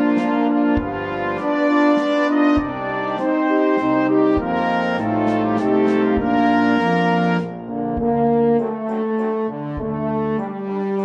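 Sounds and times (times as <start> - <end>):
brass music held chords: 0.0 - 11.0.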